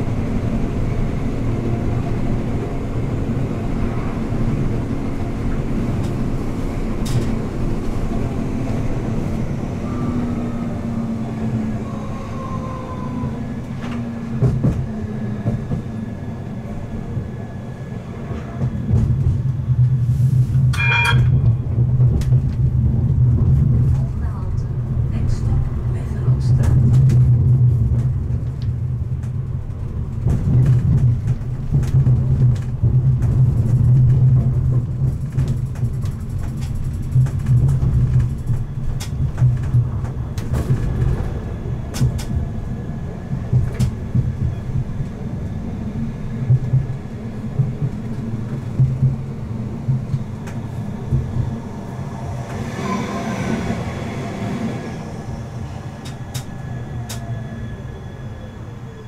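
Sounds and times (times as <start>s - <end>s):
tram wheels rumbling on track: 0.0s - 59.0s
short high ringing tone: 20.8s - 21.4s
wheels clicking over rail joints: 26.6s - 42.5s.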